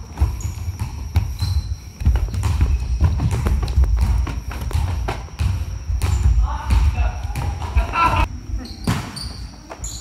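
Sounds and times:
bare feet stamping on wooden floor: 2.0s - 6.2s.

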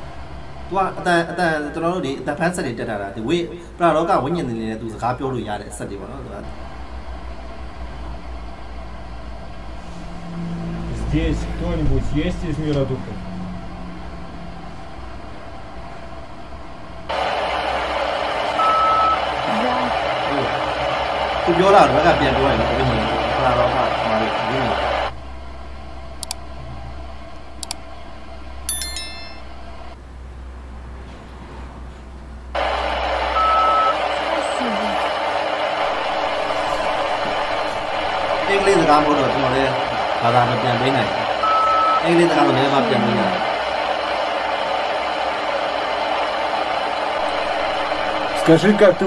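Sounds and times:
low hum: 47.0s - 49.0s.

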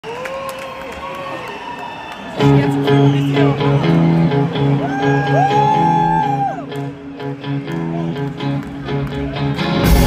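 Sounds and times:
concert crowd chatter and calls: 1.3s - 10.0s.

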